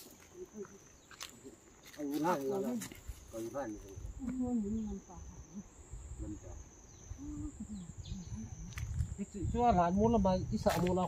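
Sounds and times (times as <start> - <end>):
high-pitched insect drone: 0.0 - 11.0.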